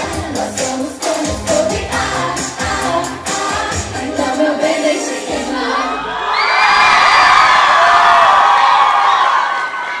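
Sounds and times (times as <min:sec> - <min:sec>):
audience cheering and screaming: 0:05.6 - 0:10.0.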